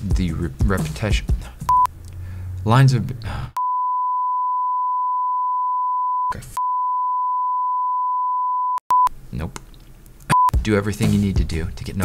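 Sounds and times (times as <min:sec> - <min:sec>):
censor bleep: 0:03.6 - 0:09.1.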